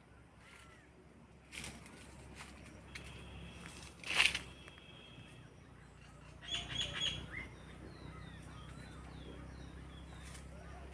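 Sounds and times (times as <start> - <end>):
birds chirping: 0.0 - 10.9.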